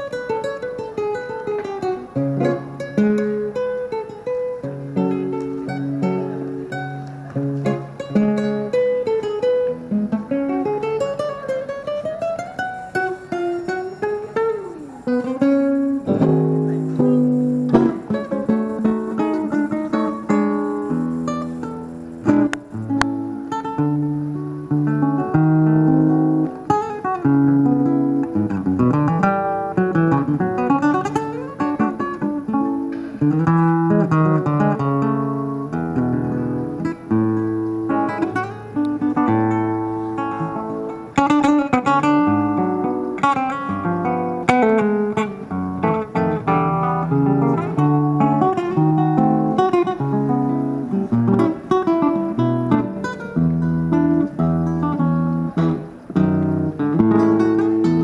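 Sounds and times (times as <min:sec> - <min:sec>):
acoustic guitar fingerpicking: 0:00.0 - 0:58.0.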